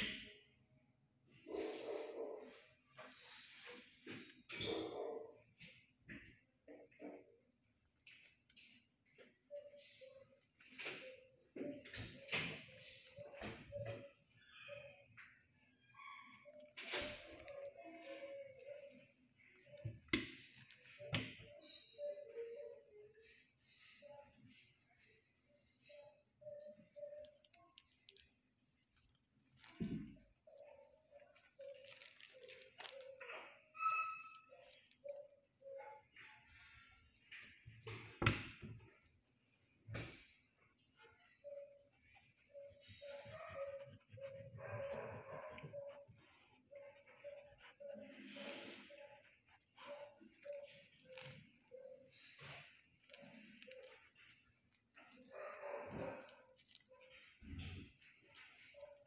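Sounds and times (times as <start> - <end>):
dogs barking: 1.4 - 2.9, 4.3 - 7.3, 42.6 - 59.0.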